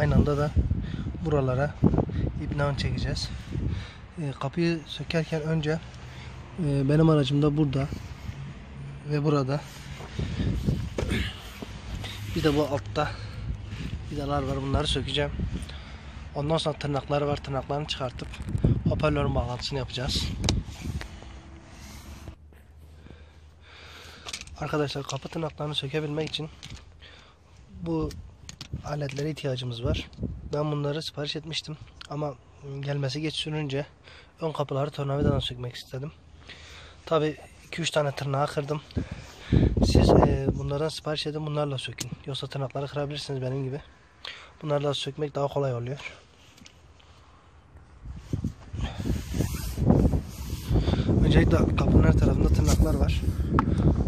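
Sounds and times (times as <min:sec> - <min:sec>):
wind buffeting microphone: 0:00.0 - 0:04.2, 0:09.7 - 0:16.3, 0:17.3 - 0:22.4, 0:29.8 - 0:30.6, 0:38.9 - 0:40.8, 0:47.8 - 0:54.0.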